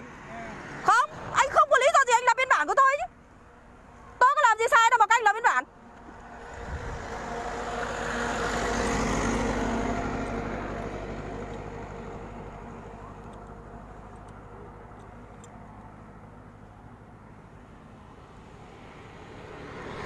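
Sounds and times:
vehicle passing by: 0.0 - 2.0, 5.8 - 16.4, 17.1 - 20.0.

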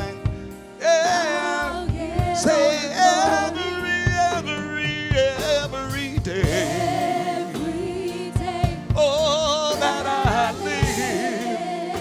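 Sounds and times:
band accompaniment: 0.0 - 12.0
women singing gospel: 0.8 - 4.2, 6.4 - 12.0
low drum thumps: 1.8 - 2.5, 4.0 - 11.3.

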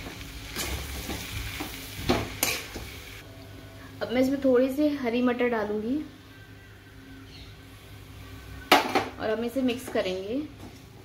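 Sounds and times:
low sizzle from hot pan: 0.0 - 11.0.

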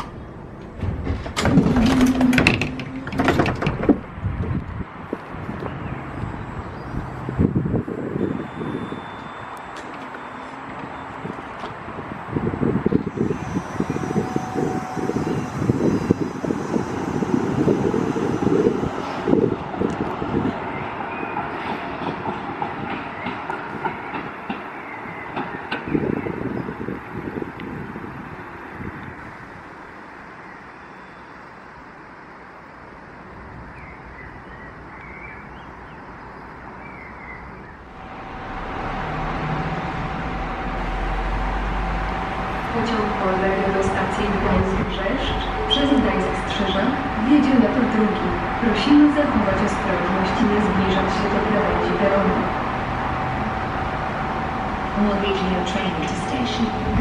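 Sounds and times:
tram wheels clattering over rails: 0.0 - 6.3, 9.2 - 28.3, 37.8 - 57.0
diesel train rumble: 0.0 - 30.8, 31.4 - 57.0.

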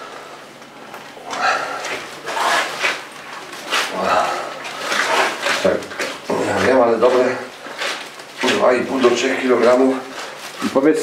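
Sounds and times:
wet squishing and rubbing: 0.6 - 11.0.

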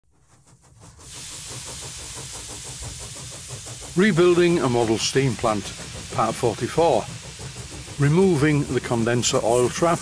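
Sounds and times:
steam engine beating: 0.1 - 10.0
steam hiss: 0.1 - 10.0.

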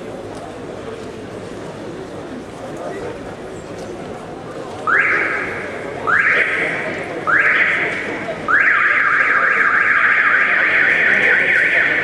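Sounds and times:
siren wailing: 4.9 - 12.0.

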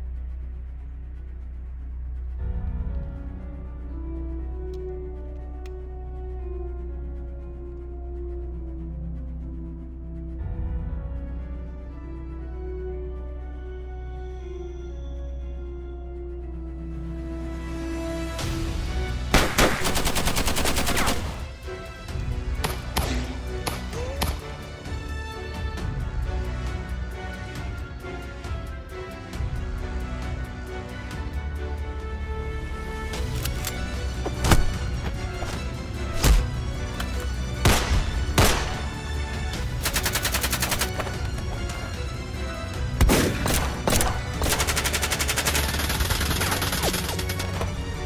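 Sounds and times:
background music: 0.0 - 48.0
rapid gunfire: 19.4 - 21.5, 39.8 - 41.2, 43.0 - 47.6.

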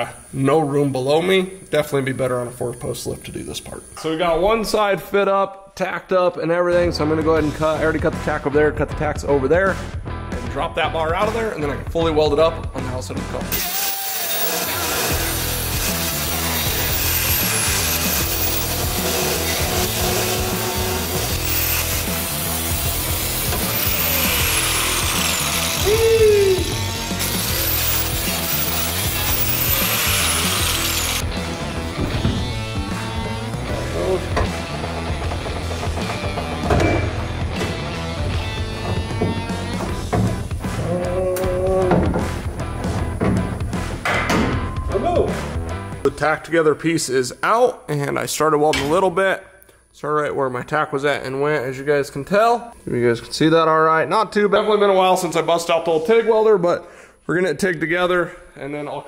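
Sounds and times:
background music: 6.6 - 46.8
grinder cutting metal: 13.5 - 31.3.

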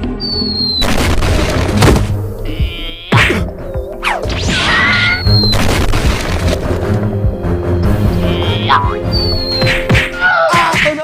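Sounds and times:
background music: 0.0 - 11.0
cartoon punch whack: 0.8 - 2.2, 3.1 - 3.5, 9.6 - 11.0.

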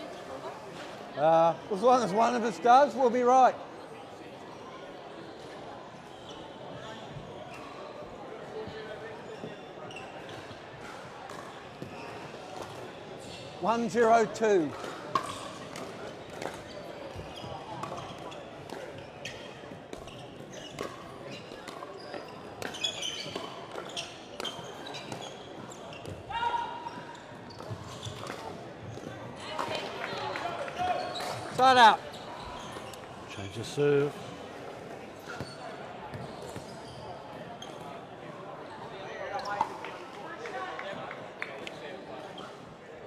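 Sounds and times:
players' voices: 11.6 - 19.1.

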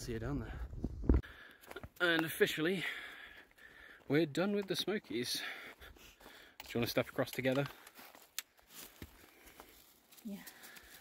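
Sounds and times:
faint ticks and rustles: 6.4 - 11.0.

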